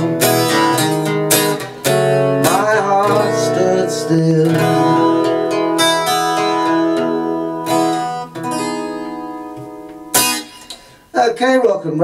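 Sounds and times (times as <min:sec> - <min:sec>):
acoustic guitar strummed chords: 0:00.0 - 0:11.3.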